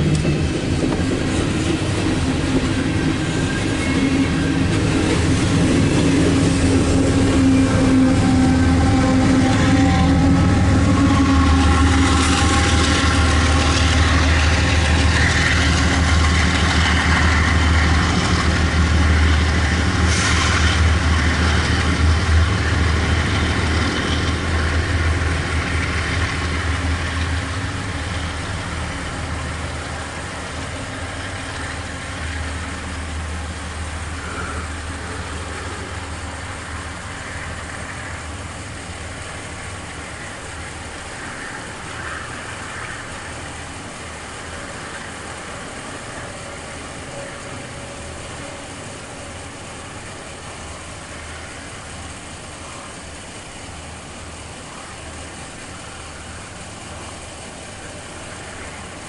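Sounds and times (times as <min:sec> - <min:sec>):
freight train rumbling past: 0:00.0 - 0:59.0.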